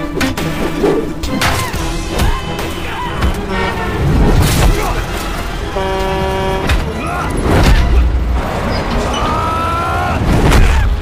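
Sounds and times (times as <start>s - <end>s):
people shouting: 1.4s - 5.2s, 6.5s - 8.1s, 9.0s - 11.0s
truck horn: 2.4s - 4.3s, 4.9s - 8.0s
passing traffic: 5.2s - 10.5s.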